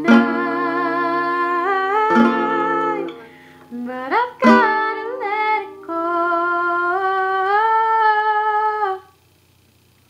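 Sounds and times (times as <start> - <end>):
girl singing a long note: 0.0 - 9.1.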